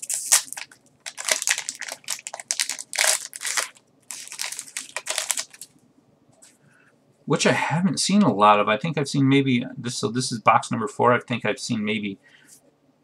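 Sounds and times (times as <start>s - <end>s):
foil wrapper crinkling: 0.0s - 5.7s
trading cards being handled: 0.0s - 5.7s.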